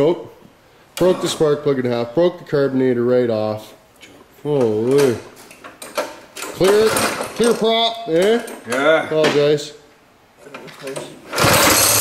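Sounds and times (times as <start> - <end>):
go-kart engine revving: 11.3 - 12.0.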